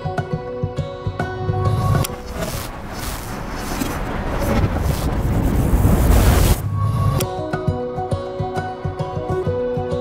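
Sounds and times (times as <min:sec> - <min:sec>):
gentle music: 0:00.0 - 0:05.3, 0:06.1 - 0:10.0
dark rumbling noise: 0:01.6 - 0:07.3.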